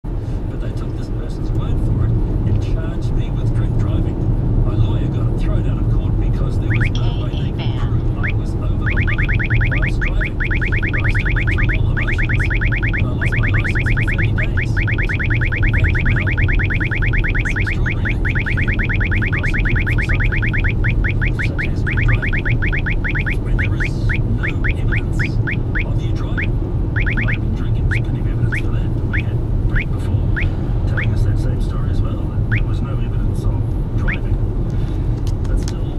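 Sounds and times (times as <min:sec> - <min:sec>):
car road noise: 0:00.0 - 0:35.9
radar detector rapid beeps: 0:06.7 - 0:07.2, 0:08.1 - 0:31.2, 0:32.5 - 0:32.7.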